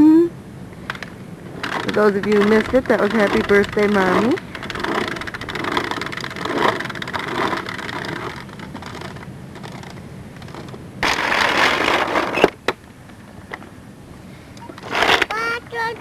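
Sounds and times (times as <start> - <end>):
plastic wheels rattling on asphalt: 0.9 - 13.7, 14.7 - 16.0.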